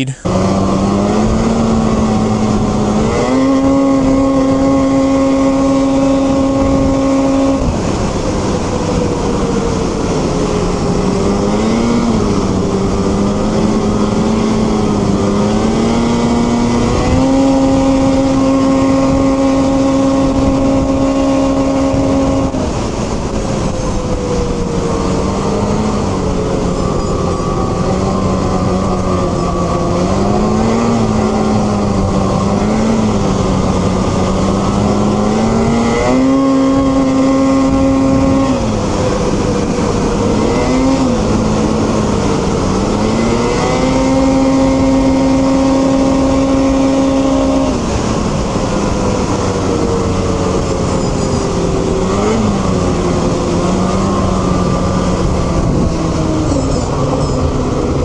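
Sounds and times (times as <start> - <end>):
hiss of wind and track: 0.0 - 58.0
snowmobile engine cruising: 0.0 - 58.0.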